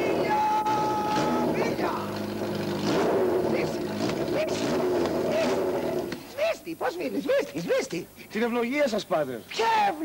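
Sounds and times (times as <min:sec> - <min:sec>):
engine revving: 0:00.0 - 0:06.2.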